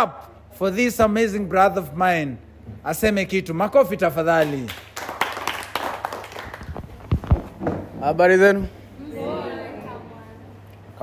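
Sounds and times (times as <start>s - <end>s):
light applause: 4.4s - 7.2s.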